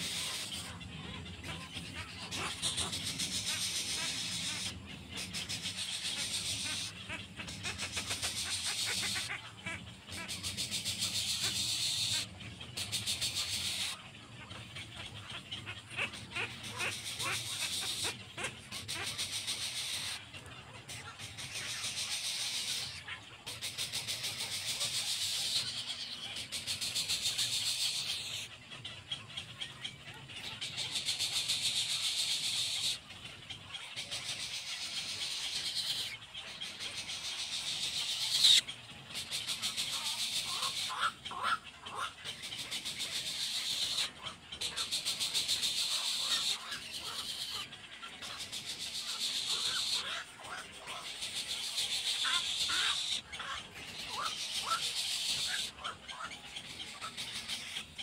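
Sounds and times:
chicks' high-pitched begging chatter: 0.0s - 58.0s.

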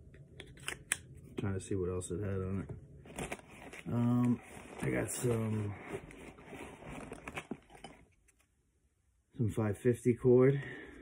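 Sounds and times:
nylon bag rustling and crinkling: 3.0s - 8.1s.

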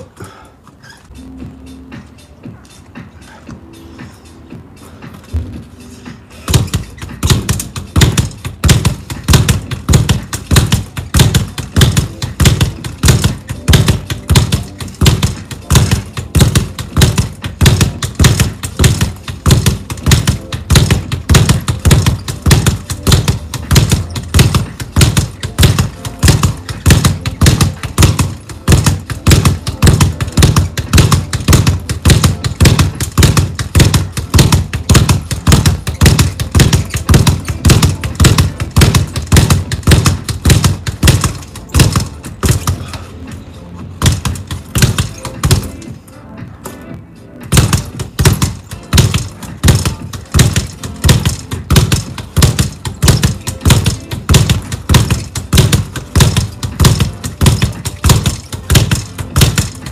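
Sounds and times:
speed bag being punched: 6.4s - 43.0s, 44.0s - 45.9s, 47.5s - 59.9s.

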